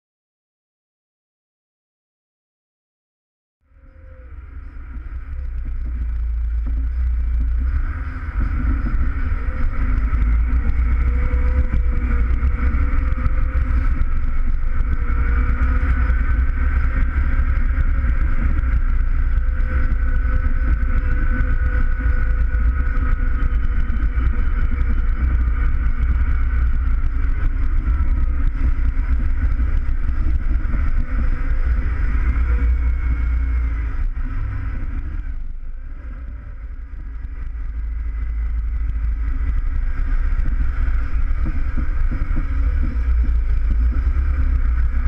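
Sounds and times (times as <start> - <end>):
steady engine whine: 3.6 - 45.0
tractor diesel engine droning: 3.7 - 45.0.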